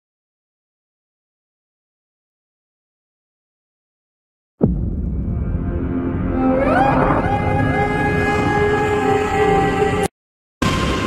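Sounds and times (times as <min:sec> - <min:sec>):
loud sliding trailer chord: 0:04.6 - 0:11.0.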